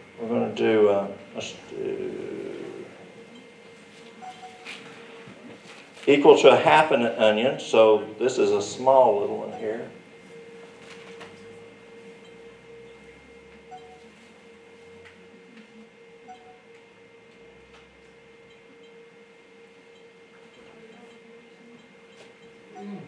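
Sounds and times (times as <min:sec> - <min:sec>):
faint steady hum: 0:00.0 - 0:23.0.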